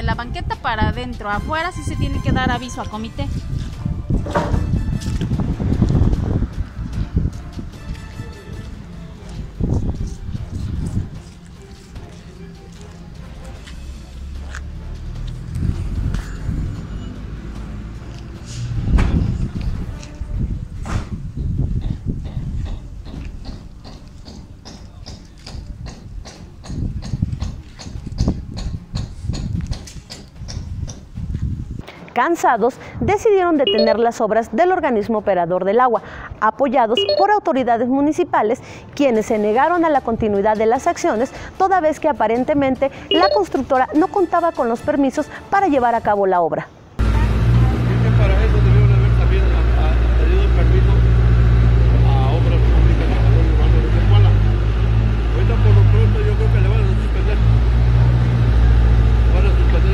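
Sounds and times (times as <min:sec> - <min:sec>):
people talking: 0:00.0 - 0:03.4, 0:32.2 - 0:51.1, 0:51.9 - 0:54.6, 0:55.4 - 0:57.5, 0:59.3 - 0:59.9.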